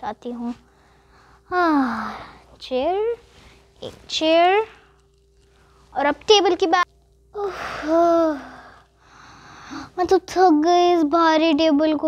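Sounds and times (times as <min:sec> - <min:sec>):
girl humming: 0:01.5 - 0:02.4, 0:07.4 - 0:08.8.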